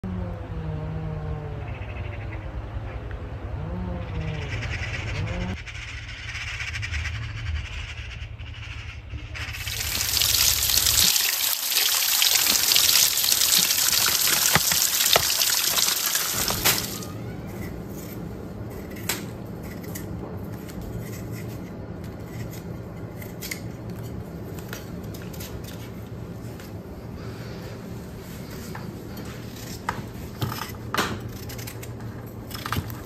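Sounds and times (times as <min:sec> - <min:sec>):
low steady rumble: 0:00.0 - 0:11.1
gliding calls: 0:03.9 - 0:17.6
stream splashing over rocks: 0:09.6 - 0:17.1.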